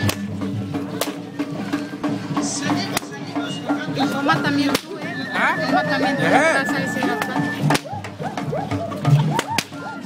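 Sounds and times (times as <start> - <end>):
music: 0.0 - 10.0
voices: 0.0 - 10.0.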